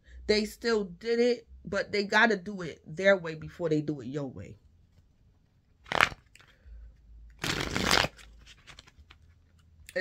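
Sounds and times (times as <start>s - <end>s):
cards riffling: 5.8s - 6.6s, 7.4s - 9.7s.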